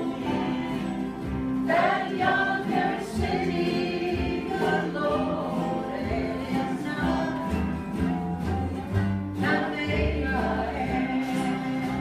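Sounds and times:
group singing in chorus: 0.0 - 8.2, 8.8 - 12.0
acoustic guitars: 0.0 - 12.0
upright basses: 0.0 - 12.0.

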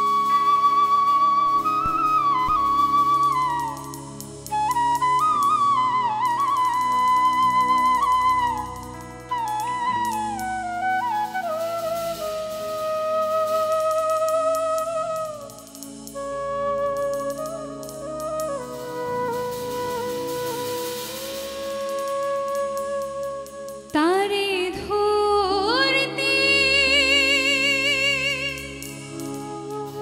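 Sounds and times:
bamboo flute melody: 0.0 - 24.7, 25.6 - 30.0.

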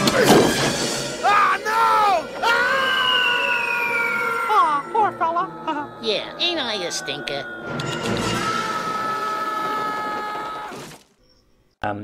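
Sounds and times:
long high-pitched cry: 2.4 - 6.1
cartoon voice: 4.4 - 7.2.

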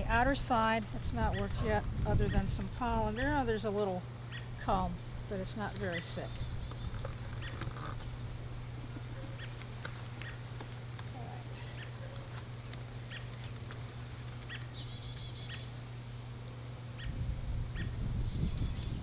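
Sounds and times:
steady low hum: 0.0 - 19.0
birds chirping: 4.2 - 15.9, 16.9 - 19.0.

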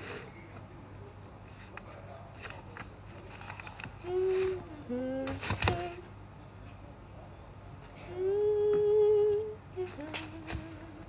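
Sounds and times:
woman humming: 4.0 - 6.1, 8.0 - 11.0.

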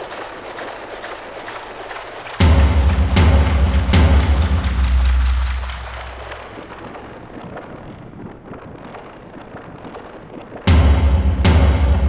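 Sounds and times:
crackling noise bed: 0.0 - 12.0
deep drum hit with rumble: 2.4 - 7.0, 10.7 - 12.0.

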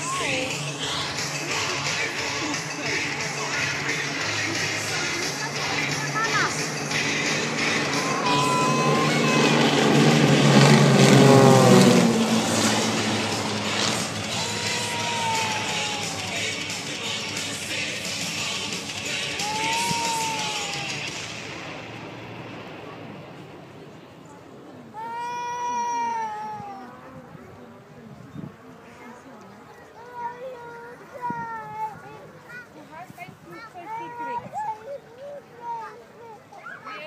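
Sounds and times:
propeller planes flying past: 0.0 - 37.0
high-pitched wailing cry: 7.8 - 9.8, 14.3 - 16.4, 19.4 - 21.0.

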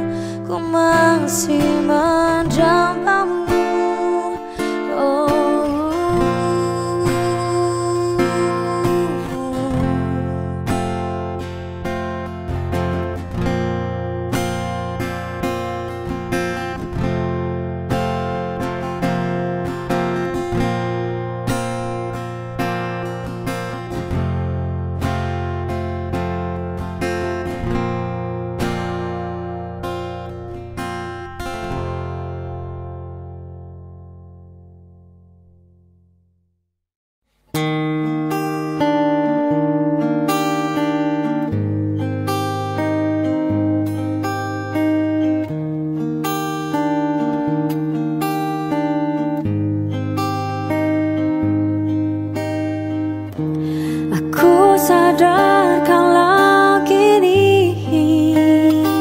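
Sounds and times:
person singing: 0.0 - 10.7, 53.5 - 59.0
picked acoustic guitar: 0.0 - 36.0, 37.3 - 59.0.

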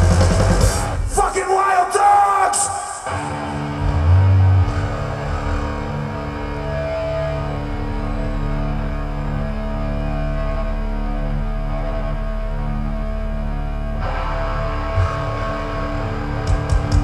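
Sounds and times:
low droning amplifier tones: 3.1 - 17.0.

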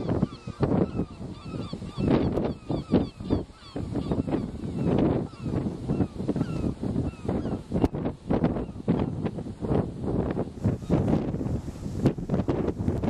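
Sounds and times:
birds calling in falling cries: 0.0 - 7.7
wind gusting on microphone: 0.0 - 13.0.

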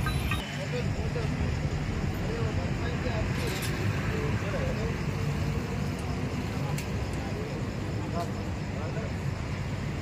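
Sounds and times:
indistinct voices talking: 0.0 - 10.0
road traffic rumble: 0.0 - 10.0.

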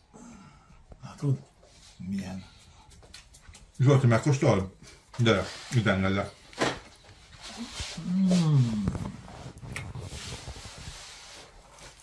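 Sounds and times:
faint soft rustles: 0.8 - 12.0.

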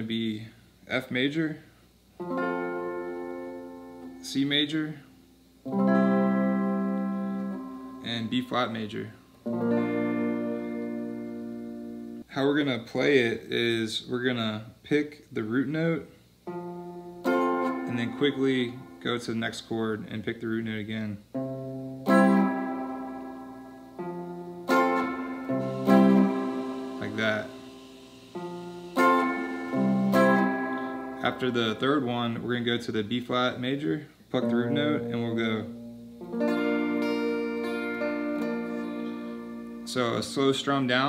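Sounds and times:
electric guitar chord ringing: 2.2 - 5.0, 5.6 - 12.3, 15.8 - 19.7, 21.3 - 41.0.

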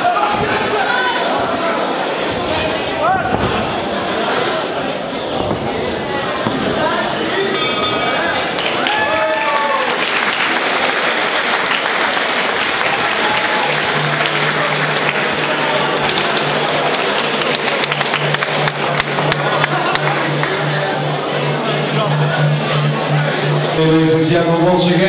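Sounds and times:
voices in crowd: 0.0 - 25.0
crowd applauding: 8.1 - 23.7
music with steady low note: 12.5 - 25.0.

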